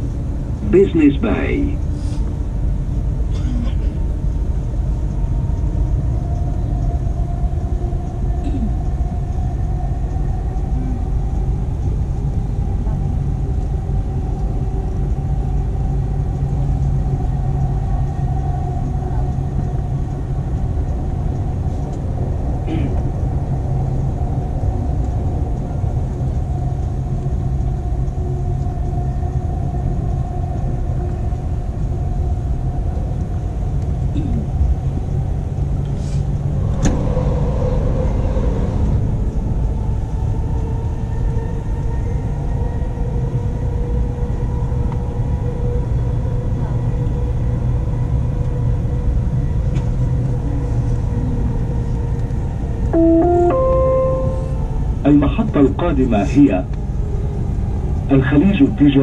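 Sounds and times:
steady humming tone: 0.0 - 42.9, 48.6 - 55.8
train carriage rumble: 0.0 - 59.0.

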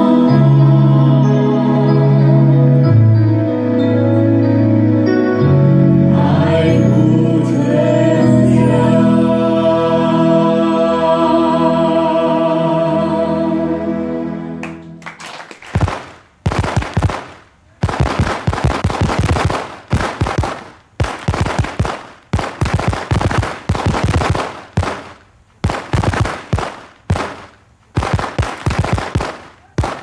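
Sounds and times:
fireworks crackling bursts: 15.0 - 30.0.

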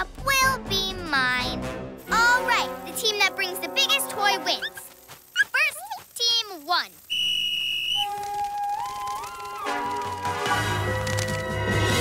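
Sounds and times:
whistle blown: 7.1 - 9.8.

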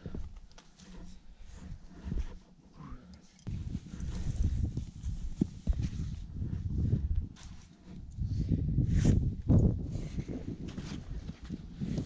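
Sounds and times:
climber rustling and scuffing on rock: 3.5 - 12.0.

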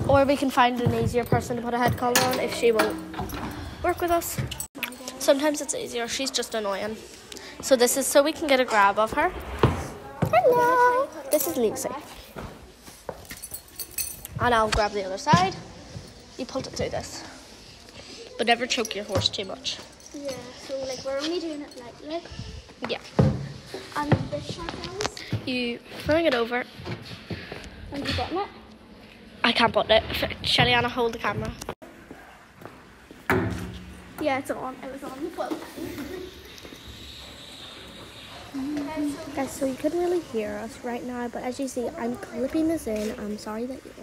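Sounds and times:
bang against stable door: 33.3 - 34.1.

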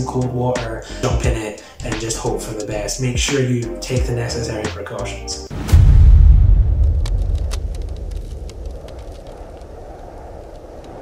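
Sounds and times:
deep boom rumble: 5.5 - 11.0
faint crackles: 6.7 - 11.0.

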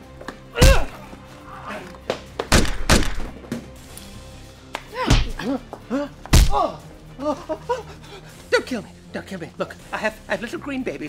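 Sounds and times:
background music: 0.0 - 11.0
heavy thuds of blows: 0.6 - 1.0, 2.4 - 3.4, 6.3 - 6.7.

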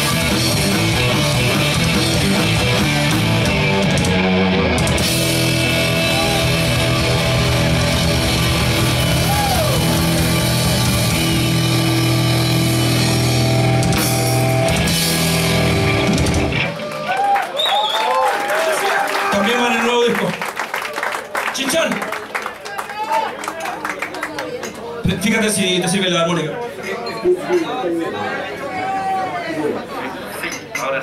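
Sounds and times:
electric bass: 0.0 - 16.8
distorted electric guitars: 0.0 - 17.0
drum kit: 0.0 - 17.0.

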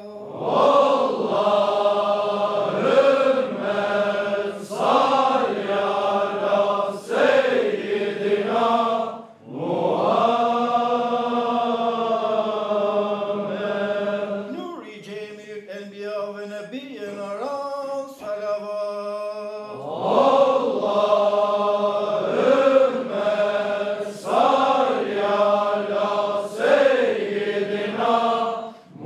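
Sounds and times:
men chanting a prayer: 0.0 - 29.0.

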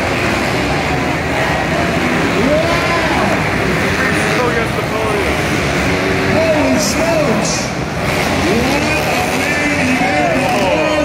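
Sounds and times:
din of voices: 0.0 - 11.0
dirt bike engines revving: 0.0 - 11.0.

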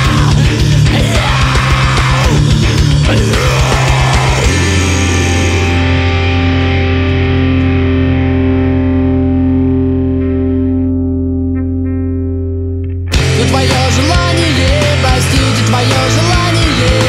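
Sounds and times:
distorted guitar and bass chord: 0.0 - 17.0
distorted rock band playing: 0.0 - 17.0.

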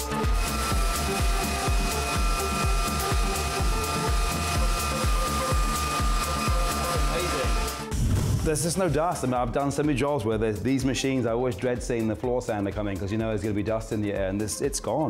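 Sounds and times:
floor sander motor whine: 0.2 - 7.8.

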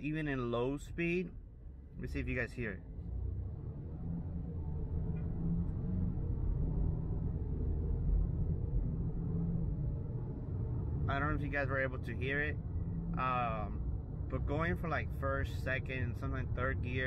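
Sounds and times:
truck engine drone from inside: 0.0 - 17.0.

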